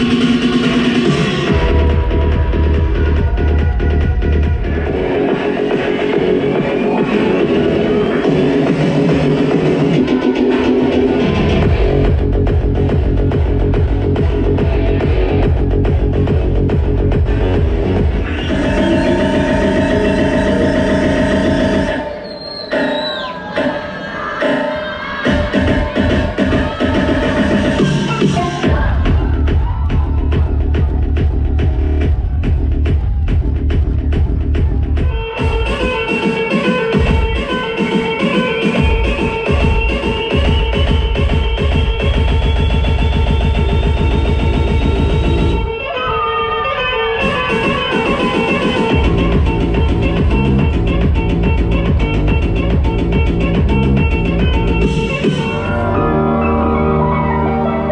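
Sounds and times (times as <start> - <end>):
bassline: 0.0 - 57.9
trance music with synth chords: 0.0 - 57.9
kick drum: 1.5 - 5.0, 28.6 - 35.6
synth sweep falling in pitch: 55.5 - 57.9.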